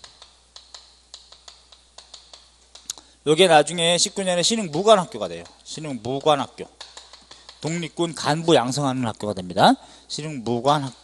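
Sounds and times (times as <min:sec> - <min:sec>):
chalk writing on chalkboard: 0:00.0 - 0:02.9, 0:03.8 - 0:08.3.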